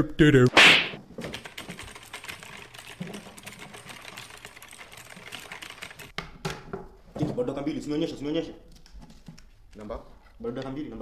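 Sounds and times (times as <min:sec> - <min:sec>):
pencils writing on paper: 0:01.2 - 0:06.2.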